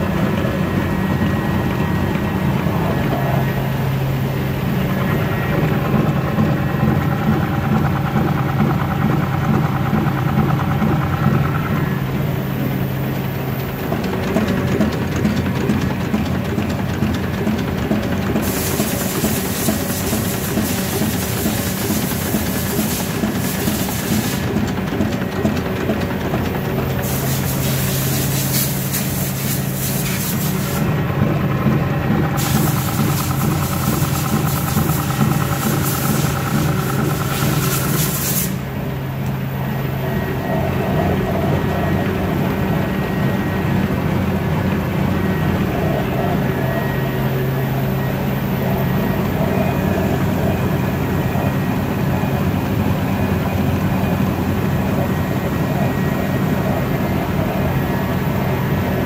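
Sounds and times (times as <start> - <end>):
printing press mechanical drone: 0.0 - 59.0
hiss: 18.4 - 24.6, 27.0 - 30.9, 32.4 - 38.7.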